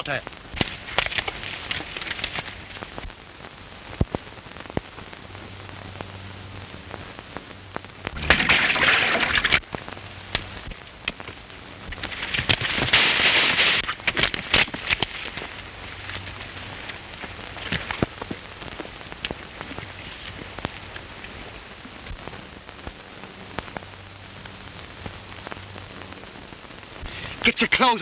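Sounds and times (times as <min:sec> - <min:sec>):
faint low hum: 0:00.0 - 0:28.0
film soundtrack hiss and crackle: 0:00.0 - 0:28.0
clicks and pops: 0:00.5 - 0:03.2, 0:07.8 - 0:23.0.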